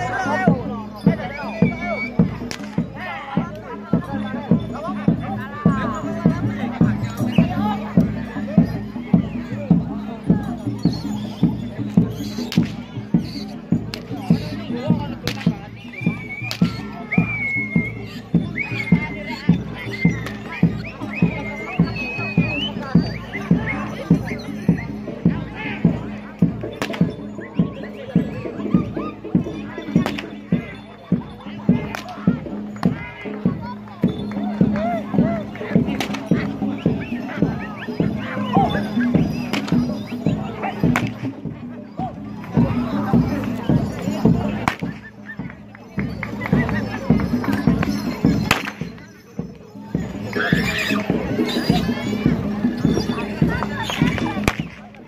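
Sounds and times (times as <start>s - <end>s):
drum struck in a steady beat: 0.0s - 55.0s
voices calling: 0.0s - 55.0s.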